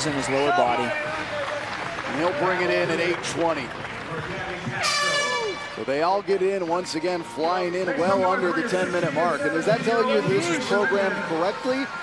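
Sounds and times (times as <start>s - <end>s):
horn high tone: 4.8s - 6.2s.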